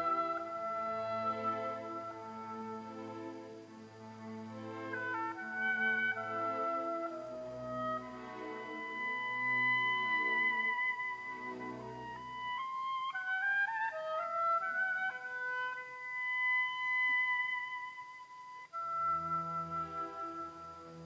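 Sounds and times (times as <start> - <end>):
orchestral opera music: 0.0 - 21.0.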